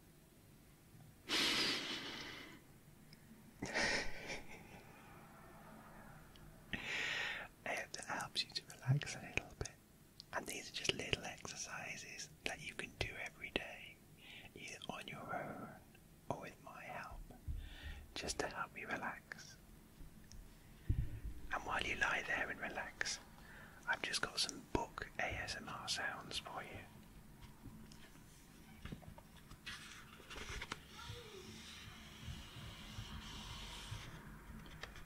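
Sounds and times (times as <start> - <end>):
man whispering: 7.5 - 17.4, 18.1 - 19.6, 21.5 - 27.0.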